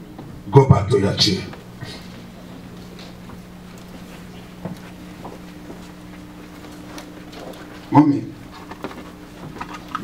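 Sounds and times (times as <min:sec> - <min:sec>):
low room hum: 0:00.0 - 0:10.0
man speaking over microphone: 0:00.5 - 0:01.6, 0:07.9 - 0:08.4
faint knocks and shuffling: 0:01.4 - 0:10.0.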